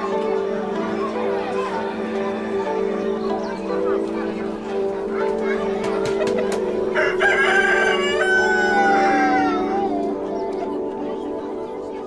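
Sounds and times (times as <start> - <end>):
background music: 0.0 - 12.0
rooster crowing: 7.0 - 10.0.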